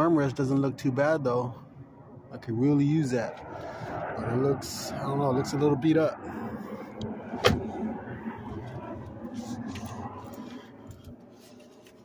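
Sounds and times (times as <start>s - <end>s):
rustling and shuffling: 9.3s - 12.0s.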